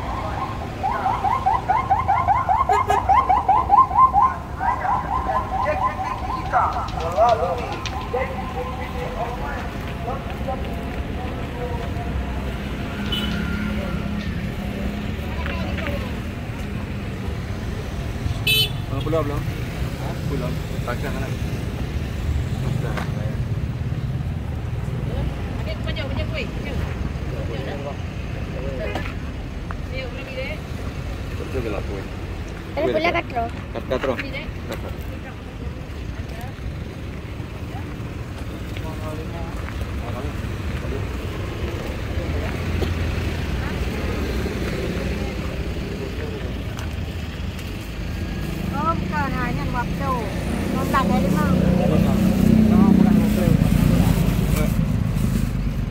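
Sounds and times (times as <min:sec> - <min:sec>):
traffic engine rumble: 0:00.0 - 0:55.9
people talking: 0:04.6 - 0:12.4, 0:13.4 - 0:16.8, 0:48.8 - 0:54.8.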